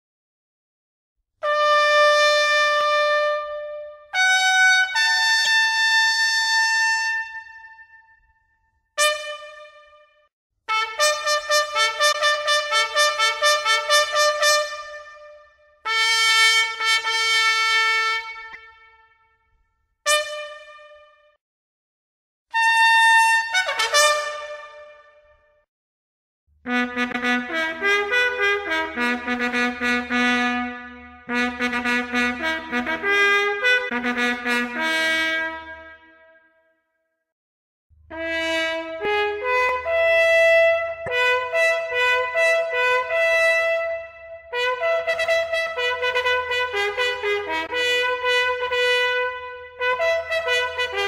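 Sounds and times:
trumpet playing a call: 0:38.2 - 0:51.0.

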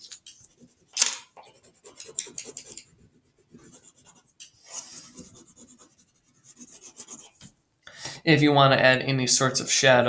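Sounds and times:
crayon scribbling on paper: 0:00.4 - 0:07.5.

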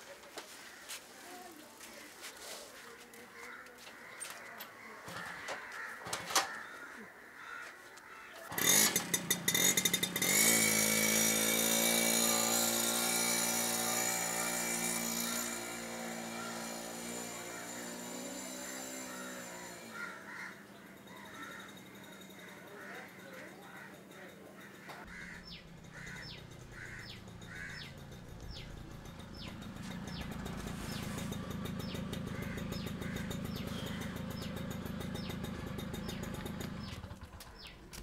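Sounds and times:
small motorcycle engine: 0:08.4 - 0:38.0.

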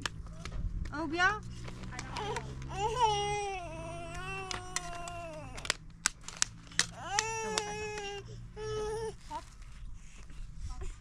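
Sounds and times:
infant crying: 0:02.1 - 0:05.7, 0:06.9 - 0:09.4.

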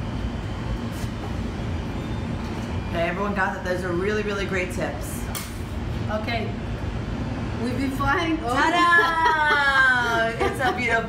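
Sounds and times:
low rumble of machinery: 0:00.0 - 0:11.0.

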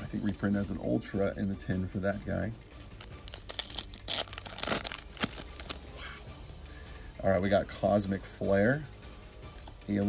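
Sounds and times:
foil wrapper tearing: 0:02.6 - 0:05.8.

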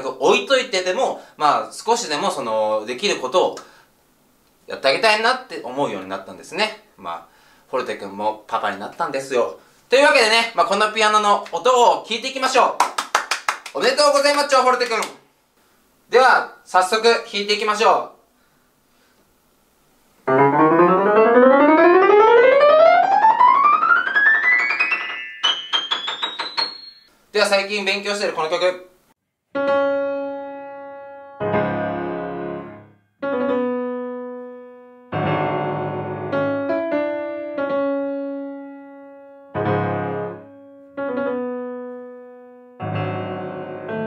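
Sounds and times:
person speaking: 0:04.7 - 0:12.8, 0:13.7 - 0:15.3, 0:27.3 - 0:28.9
grand piano playing: 0:20.2 - 0:27.1, 0:29.6 - 0:44.0.

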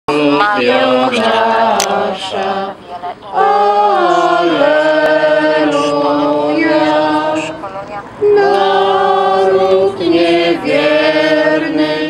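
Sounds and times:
group singing a hymn unaccompanied: 0:00.1 - 0:12.0.

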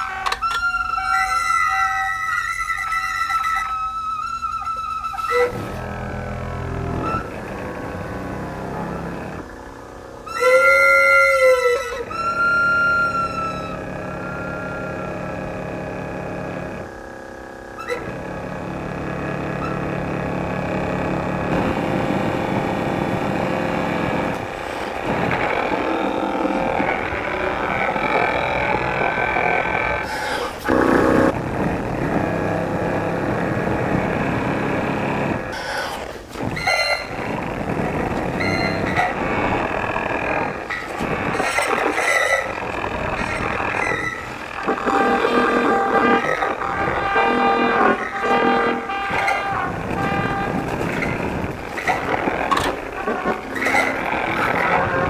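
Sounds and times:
tubing wind instrument blown: 0:00.0 - 0:09.6, 0:10.2 - 0:55.0.

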